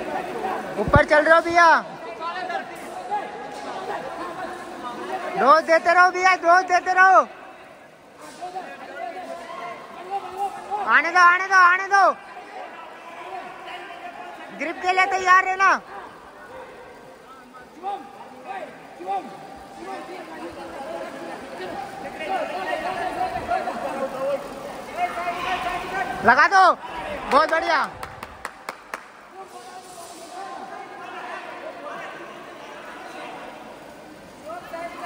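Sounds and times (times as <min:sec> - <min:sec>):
sports hall background noise: 0:00.0 - 0:35.0
hand claps: 0:27.3 - 0:29.2.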